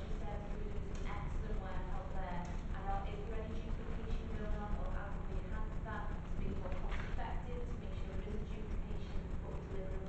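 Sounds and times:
steady low rumble: 0.0 - 10.0
woman speaking: 0.0 - 10.0.

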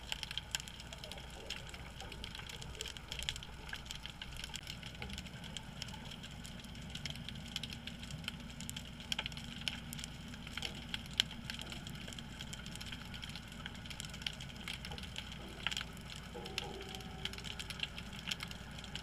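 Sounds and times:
sharp crackling clicks: 0.0 - 19.0
underwater low rumble: 0.0 - 19.0.

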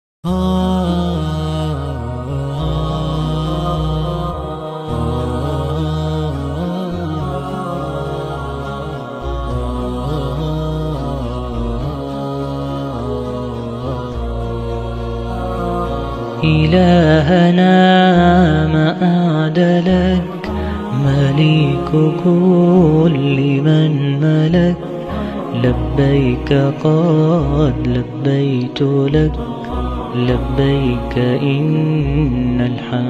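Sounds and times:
low vocal drone: 0.2 - 33.0
wordless chanted melody: 0.3 - 33.0.

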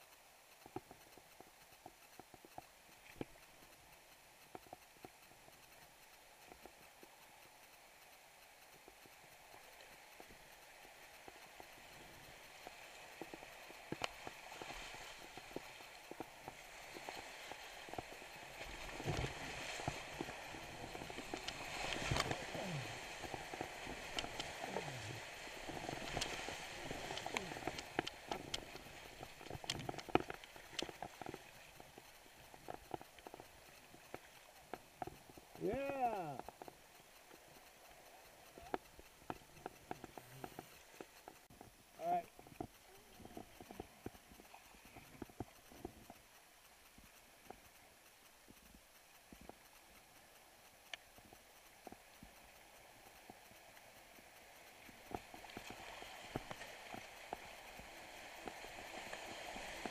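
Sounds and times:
paddle strokes splashing: 0.5 - 59.9
water slapping against camera: 11.2 - 37.9.

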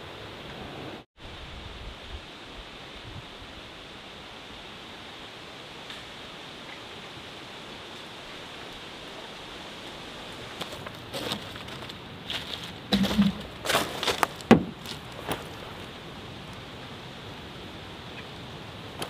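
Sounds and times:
outdoor background hiss: 0.0 - 19.0.

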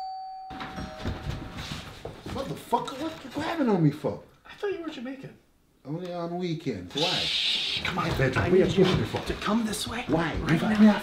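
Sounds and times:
doorbell chime: 0.0 - 1.8
scuffling footsteps: 0.8 - 3.5, 7.7 - 11.0
clothing rustling: 0.8 - 3.6.

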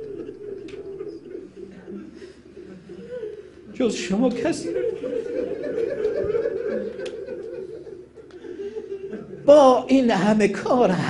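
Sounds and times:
men weeping: 0.0 - 3.7, 4.6 - 9.5.

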